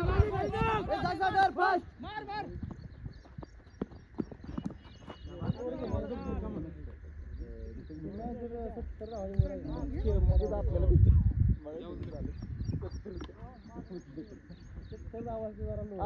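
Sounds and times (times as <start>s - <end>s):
men calling and shouting: 0.0s - 16.0s.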